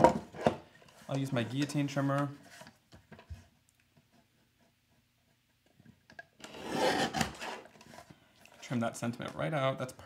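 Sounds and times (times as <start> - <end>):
paper guillotine blade cutting: 6.4 - 7.7.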